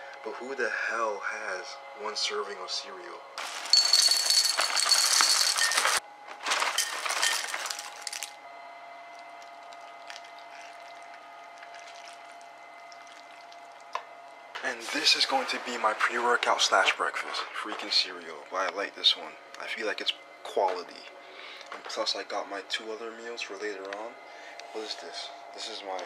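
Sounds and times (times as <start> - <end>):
cereal pouring into ceramic bowl: 3.4 - 6.0, 6.6 - 8.3
milk pouring: 9.8 - 13.9.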